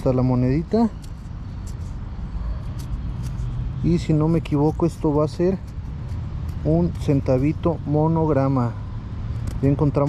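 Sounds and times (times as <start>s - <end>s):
steady low rumble: 0.0s - 10.0s.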